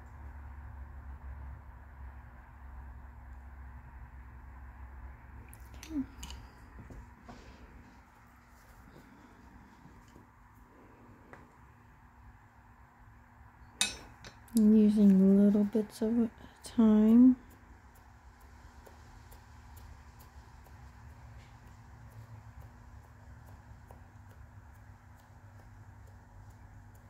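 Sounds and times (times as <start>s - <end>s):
room hum: 0.0s - 27.0s.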